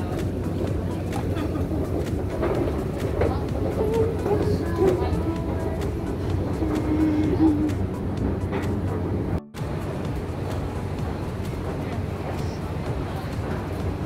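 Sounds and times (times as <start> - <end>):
escalator low hum: 0.0 - 14.0
street background noise: 0.0 - 14.0.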